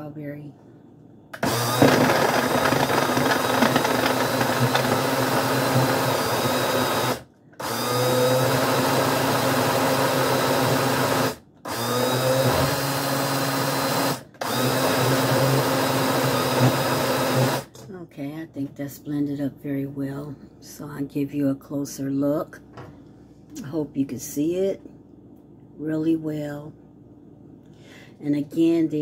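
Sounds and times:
blender motor running: 1.4s - 17.7s.

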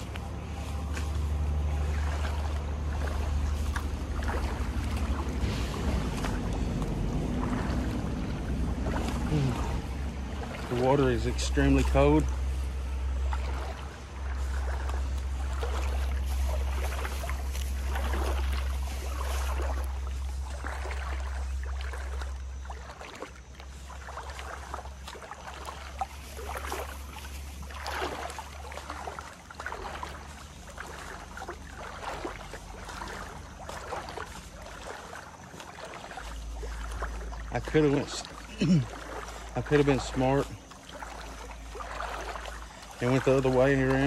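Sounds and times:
low microphone rumble: 0.0s - 22.7s
wading through water splashing: 0.0s - 44.0s.

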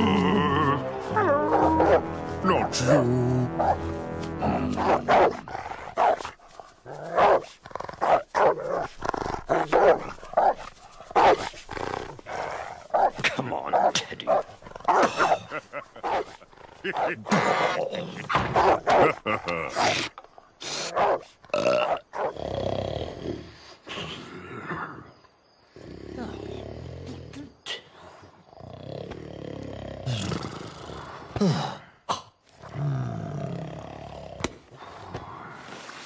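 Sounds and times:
background music: 0.0s - 6.1s
cartoon dog barking and growling: 0.0s - 10.6s, 12.9s - 20.1s
character grunts and mumbles: 16.9s - 18.3s, 31.4s - 34.4s.

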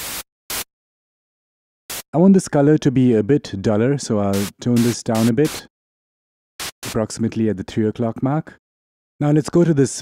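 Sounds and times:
white noise bursts: 0.0s - 0.7s, 4.4s - 5.6s, 6.6s - 7.0s.

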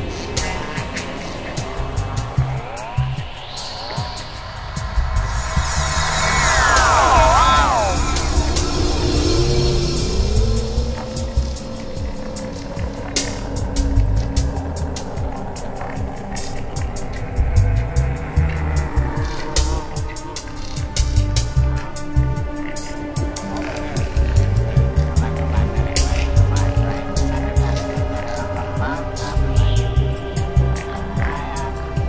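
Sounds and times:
gliding synth tones: 1.1s - 18.0s
pulsing low bass: 1.5s - 20.2s, 23.8s - 31.8s
slow rising synth tone: 1.8s - 15.6s.

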